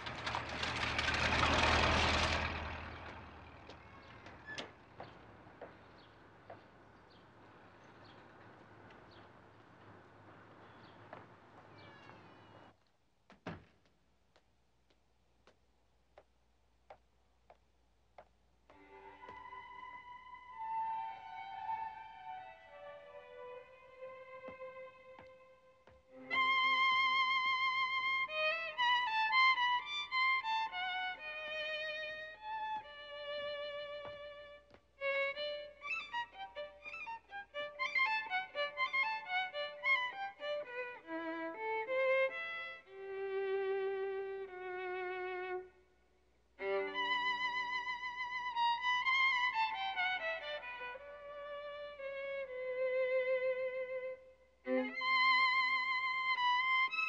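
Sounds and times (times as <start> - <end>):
solo violin melody: 18.7 - 45.9, 46.6 - 57.0.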